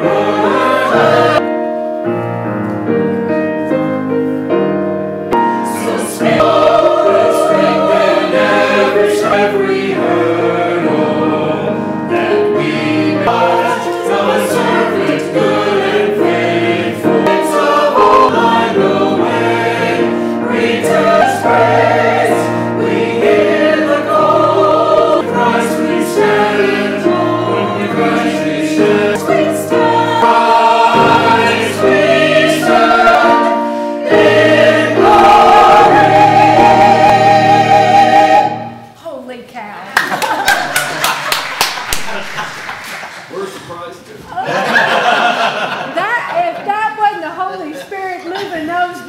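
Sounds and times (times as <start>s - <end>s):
church choir singing: 0.0s - 2.0s, 5.3s - 39.0s, 44.4s - 46.6s.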